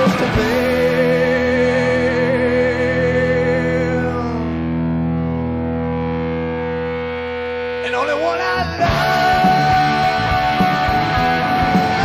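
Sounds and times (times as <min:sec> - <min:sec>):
distorted electric guitar chord: 0:00.0 - 0:12.0
rising guitar slides: 0:00.0 - 0:12.0
rock band playing: 0:00.0 - 0:12.0.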